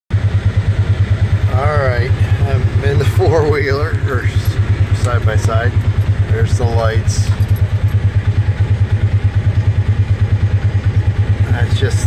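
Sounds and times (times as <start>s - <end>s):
engine idling low throb: 0.1s - 12.0s.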